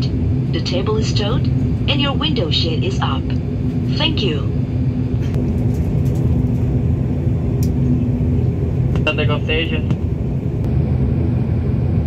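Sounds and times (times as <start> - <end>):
turboprop engines droning in cabin: 0.0 - 12.0.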